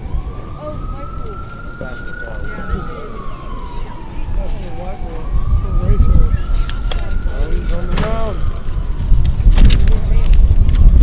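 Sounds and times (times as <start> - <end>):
crowd chatter: 0.0 - 11.0
siren wailing: 0.0 - 11.0.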